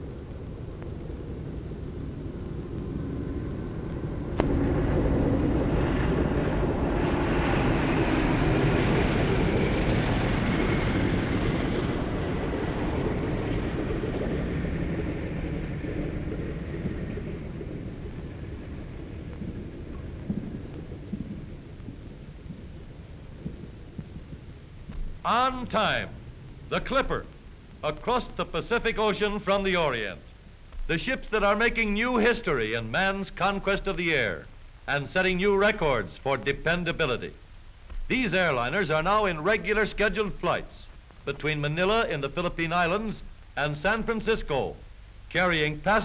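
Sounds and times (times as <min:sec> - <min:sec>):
airplane engines droning: 0:00.0 - 0:46.0
film soundtrack hiss: 0:00.0 - 0:46.0.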